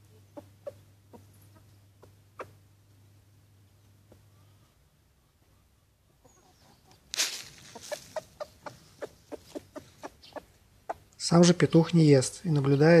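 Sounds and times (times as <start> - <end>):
rooster clucking: 0.2 - 2.6, 6.1 - 11.2.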